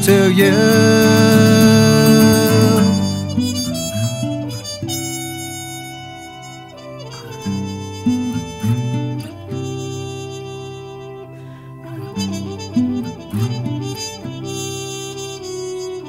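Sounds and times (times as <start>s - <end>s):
harmonica long notes: 0.0s - 16.0s
strummed acoustic guitar: 0.0s - 16.0s.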